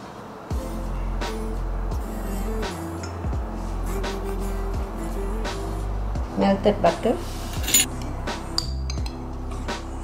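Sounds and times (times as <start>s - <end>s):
lo-fi music with steady beat: 0.4s - 10.0s
glass clinking against bowl: 7.6s - 8.0s.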